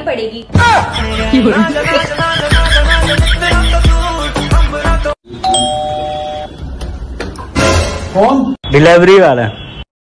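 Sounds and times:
electronic doorbell two-tone chime: 0:05.4 - 0:06.5.

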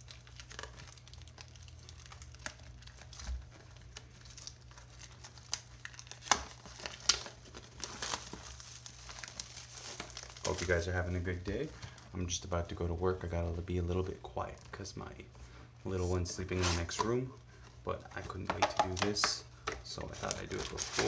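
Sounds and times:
plastic wrap tearing and crinkling: 0:00.0 - 0:15.0, 0:18.2 - 0:21.0.

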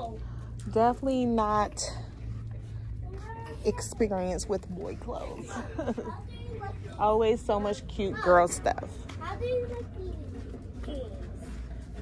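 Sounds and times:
low steady hum: 0:00.0 - 0:09.2.

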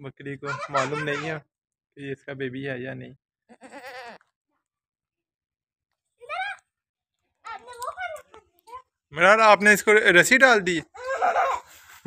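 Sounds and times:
goat bleating: 0:03.5 - 0:04.3.

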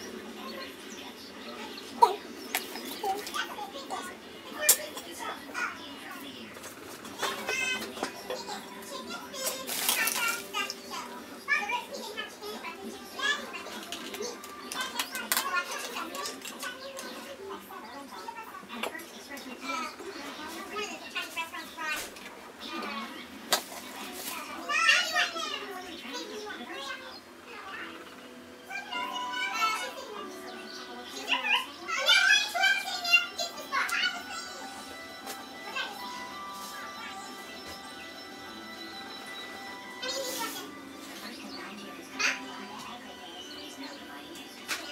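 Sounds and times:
faint music: 0:00.0 - 0:44.9.

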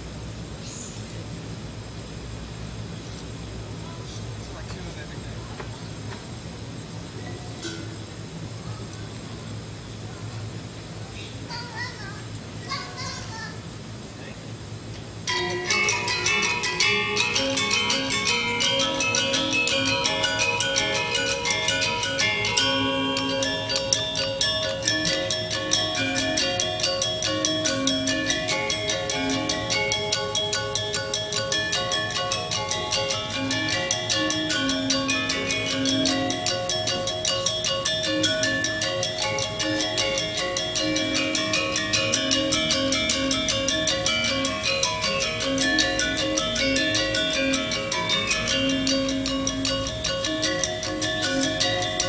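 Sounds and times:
gamelan metallophones playing: 0:15.2 - 0:52.0.

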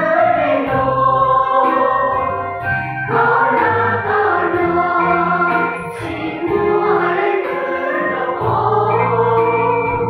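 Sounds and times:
choir of young voices singing hymn: 0:00.0 - 0:02.4, 0:03.0 - 0:10.0.

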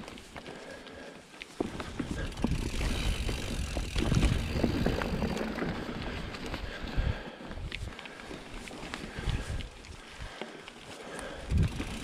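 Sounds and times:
bike rattling and clicking: 0:00.0 - 0:12.0
bike tyres rumbling on dirt: 0:00.0 - 0:12.0.

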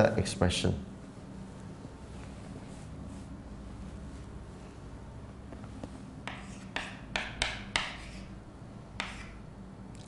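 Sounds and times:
chalk writing on chalkboard: 0:06.2 - 0:08.4, 0:09.0 - 0:09.4.

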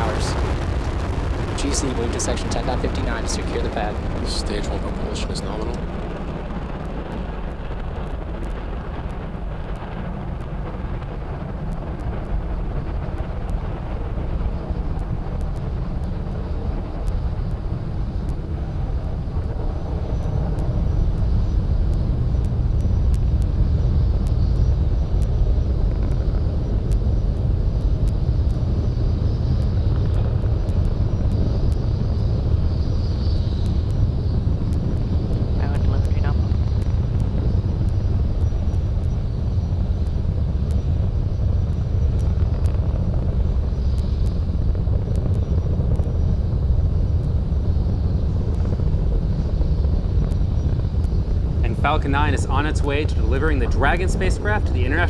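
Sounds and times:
rocket engines deep rumble: 0:00.0 - 0:55.0.

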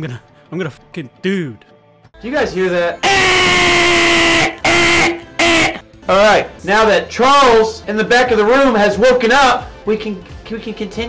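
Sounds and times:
man screaming into distorting microphone: 0:03.0 - 0:05.8.

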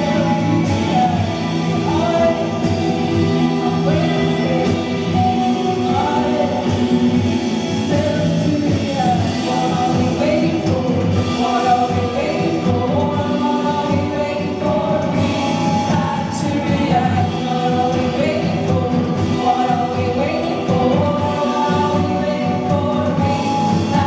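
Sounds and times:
drums with cymbals: 0:00.0 - 0:24.0
electric guitar: 0:00.0 - 0:24.0
person singing: 0:00.0 - 0:24.0.

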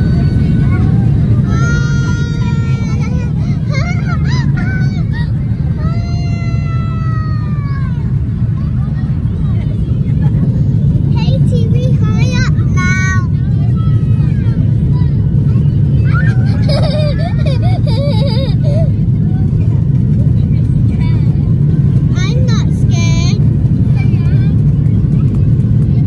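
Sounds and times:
jet engine and airflow roar: 0:00.0 - 0:26.0.

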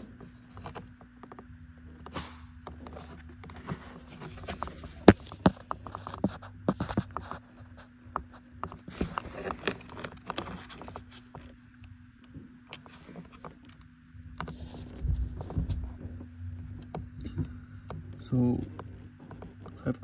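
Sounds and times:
faint steady hum: 0:00.0 - 0:20.0
hands rummaging through wires: 0:00.0 - 0:20.0.

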